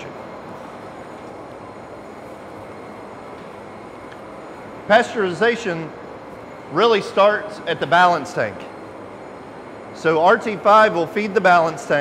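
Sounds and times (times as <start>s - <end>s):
factory machinery and air handling: 0.0s - 12.0s.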